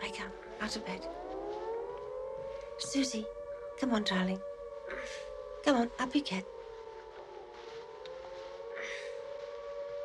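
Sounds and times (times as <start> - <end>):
air-raid siren wailing: 0.0 - 10.0.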